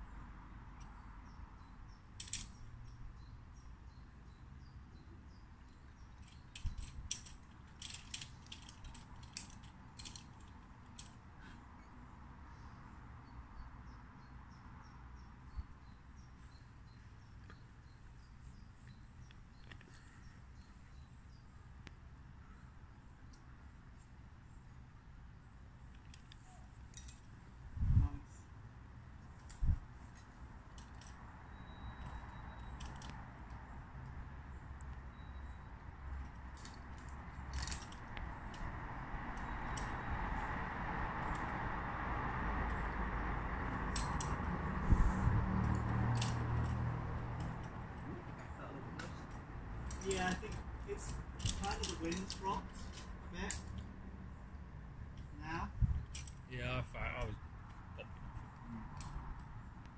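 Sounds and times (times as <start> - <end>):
climbing gear clicking and rattling: 1.6 - 2.7, 6.0 - 11.9, 25.9 - 27.4, 29.2 - 33.6, 35.1 - 41.6, 43.5 - 53.9, 55.9 - 56.5
wind rumble: 27.5 - 28.4, 37.1 - 53.3, 55.7 - 56.2.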